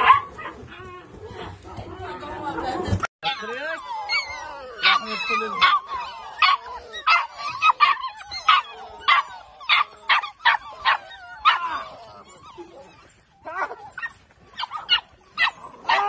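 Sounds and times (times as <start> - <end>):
puppies yipping: 0.0 - 1.5, 3.2 - 16.0
puppies whining: 3.2 - 16.0.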